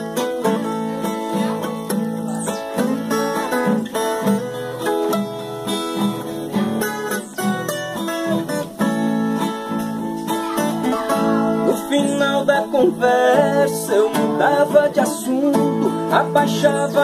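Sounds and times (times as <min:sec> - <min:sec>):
acoustic guitar accompaniment: 0:00.0 - 0:17.0
plucked guitar melody: 0:00.0 - 0:17.0.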